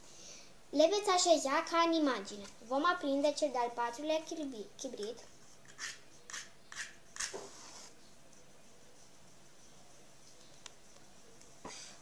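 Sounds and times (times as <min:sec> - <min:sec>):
match scratching on matchbox: 0:05.0 - 0:08.0.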